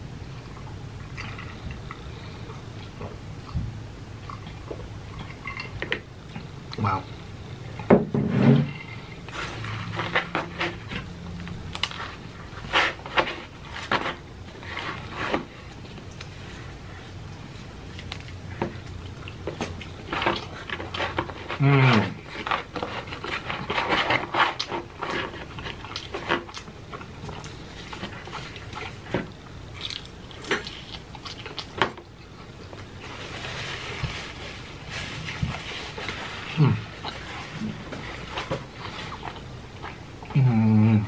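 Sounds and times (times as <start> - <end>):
close chewing and smacking: 0.3 - 7.9, 8.7 - 40.5
person humming: 21.6 - 22.2, 36.5 - 36.9, 40.3 - 41.0.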